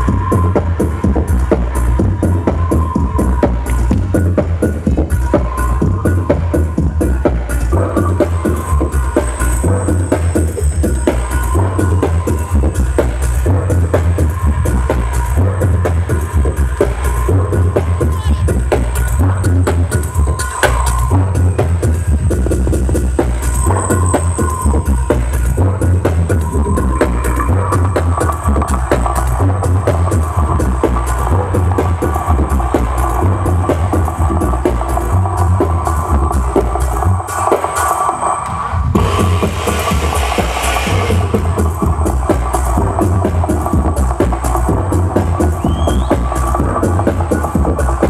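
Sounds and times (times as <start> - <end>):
electronic dance music: 0.0 - 48.0
hissing sweep: 37.4 - 42.7.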